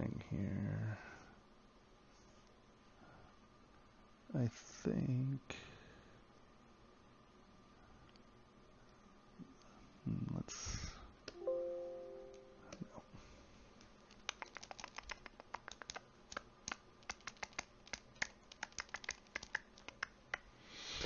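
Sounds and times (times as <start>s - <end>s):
faint ringing chord: 11.3s - 12.8s
computer keyboard clicks: 14.1s - 20.5s.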